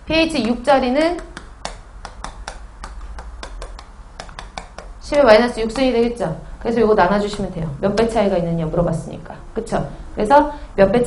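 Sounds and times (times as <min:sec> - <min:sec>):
chalk tapping on chalkboard: 0:01.2 - 0:05.0.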